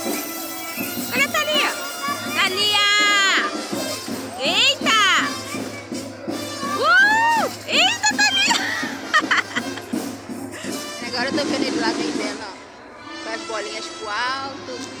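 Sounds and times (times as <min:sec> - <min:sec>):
children shouting and squealing: 0:00.0 - 0:10.8
background music: 0:00.0 - 0:15.0.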